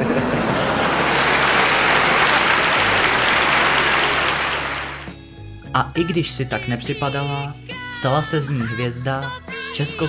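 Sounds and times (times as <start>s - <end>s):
audience applauding: 0.0s - 5.2s.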